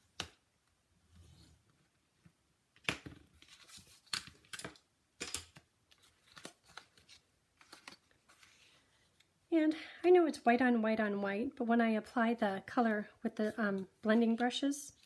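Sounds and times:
paper rustling: 3.3s - 4.6s, 5.9s - 8.9s.

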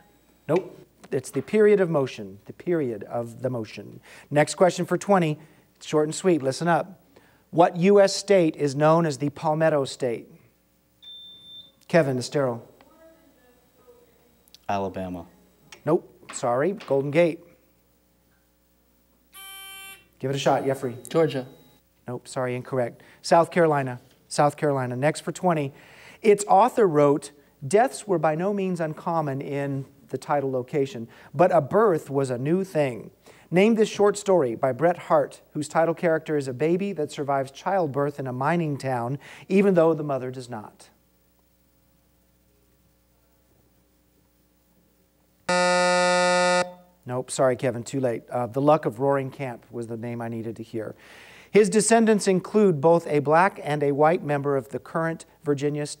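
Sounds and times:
electronic buzzer beep: 11.0s - 11.8s, 19.3s - 21.8s, 45.5s - 47.0s.

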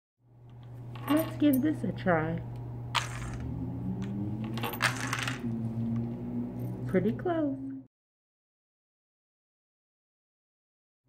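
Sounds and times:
steady low hum: 0.3s - 7.9s.

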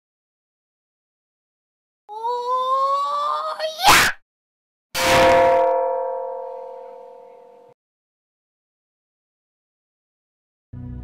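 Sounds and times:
bell-like ding: 5.0s - 7.8s.

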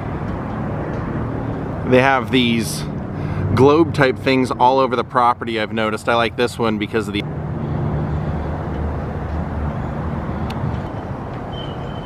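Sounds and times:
low engine rumble: 0.0s - 12.0s.

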